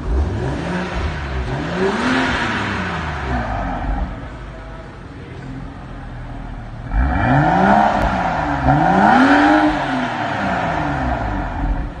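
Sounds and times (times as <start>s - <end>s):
car engine revving and idling: 0.0s - 12.0s.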